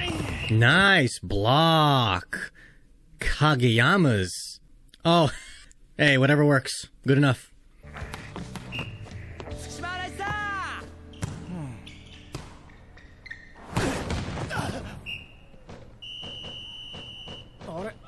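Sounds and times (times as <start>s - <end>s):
background music: 7.8s - 14.0s
volleyball hits: 11.1s - 17.9s.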